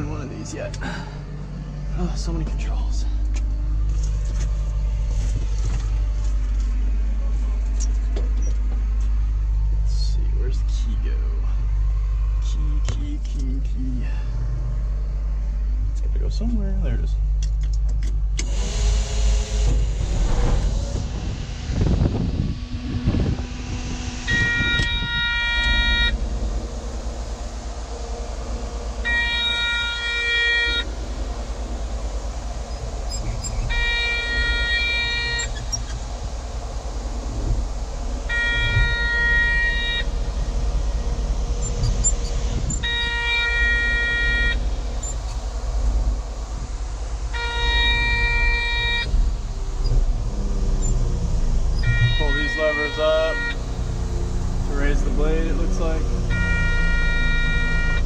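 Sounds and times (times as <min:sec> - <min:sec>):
diesel engine starting and running: 0:00.0 - 0:58.0
multi-tone warning beep: 0:24.3 - 0:26.2, 0:29.0 - 0:30.9, 0:33.2 - 0:35.6, 0:38.3 - 0:40.1, 0:42.8 - 0:45.2, 0:47.4 - 0:49.1, 0:51.8 - 0:53.6, 0:56.3 - 0:58.0.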